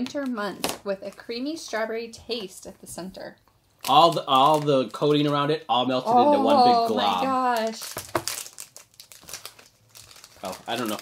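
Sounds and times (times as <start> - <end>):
snack wrapper crackling open: 3.8 - 5.4, 7.5 - 11.0.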